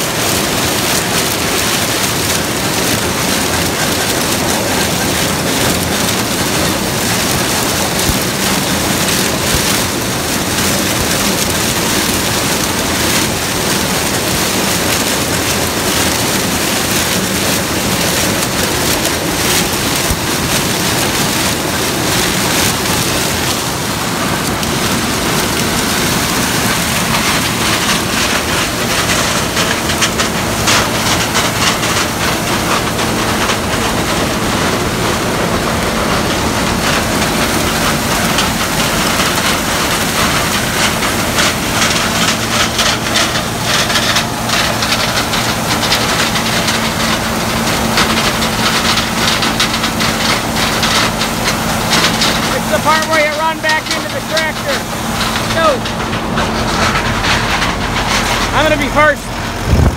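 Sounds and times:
combine harvester engine humming: 0.0 - 59.9
crackling rattle of dry stalks: 0.0 - 59.9.

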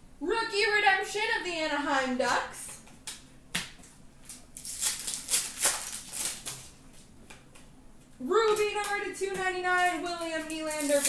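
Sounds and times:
trading cards flipping: 3.0 - 6.7.

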